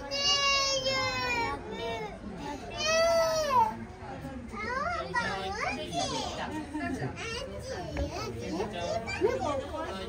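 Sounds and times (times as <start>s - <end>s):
children chattering and calling out: 0.0s - 10.0s
people talking: 0.0s - 10.0s.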